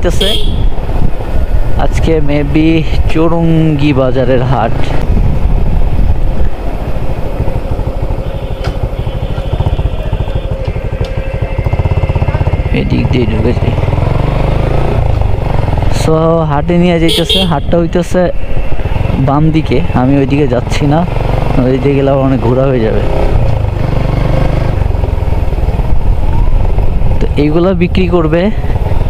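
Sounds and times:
motorcycle engine running: 0.0s - 1.7s, 4.6s - 29.0s.

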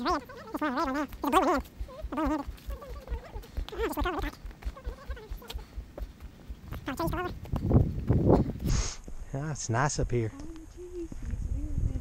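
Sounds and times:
person laughing with trembling pitch: 0.0s - 5.6s
low footstep thuds: 1.0s - 9.2s.

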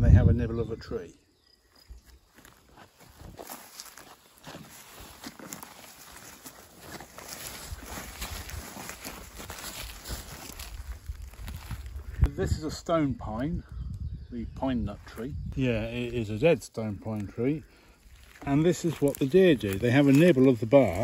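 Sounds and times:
footsteps through tall grass: 1.6s - 12.3s, 17.1s - 21.0s
stems rustling against legs: 1.7s - 12.4s, 14.9s - 21.0s.

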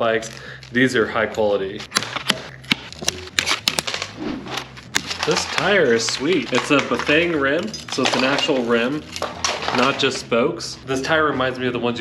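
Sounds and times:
cardboard handling: 0.2s - 10.1s
cutters snipping plastic zip ties: 1.8s - 4.1s.

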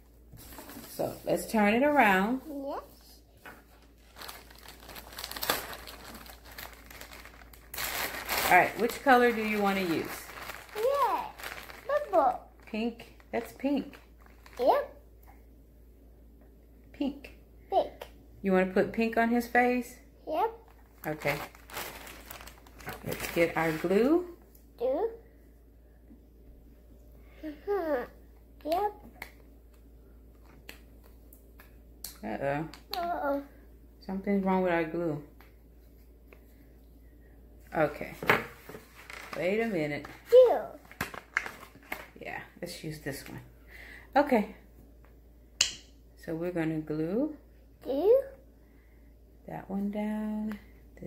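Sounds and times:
plastic bag crinkling: 3.6s - 14.9s, 20.7s - 24.3s, 38.7s - 39.7s, 40.8s - 42.2s.

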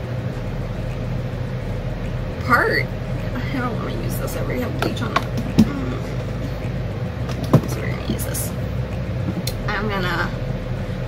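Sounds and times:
low hum: 0.0s - 11.0s
person speaking: 2.4s - 6.8s.

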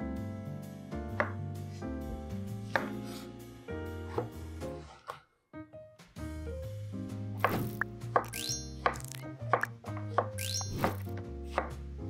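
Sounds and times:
background music: 0.0s - 12.0s
knife cutting on wooden board: 2.7s - 3.2s, 7.4s - 9.7s.

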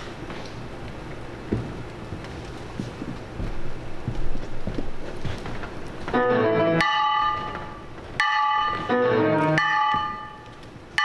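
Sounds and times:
runs of lower notes: 6.0s - 10.5s
bell-like struck tones: 6.2s - 10.5s.

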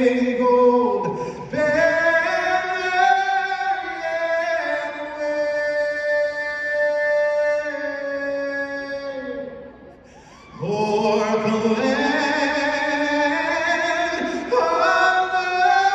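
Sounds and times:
person singing a cappella: 0.0s - 9.8s, 10.5s - 15.9s.

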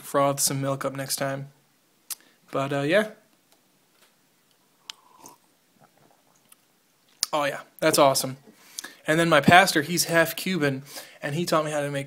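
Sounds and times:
mouth clicks: 4.8s - 7.4s
slurping coffee from a mug: 4.9s - 6.2s.

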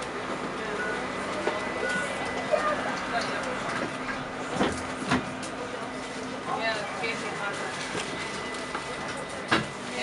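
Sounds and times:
bus rolling noise: 0.0s - 10.0s.

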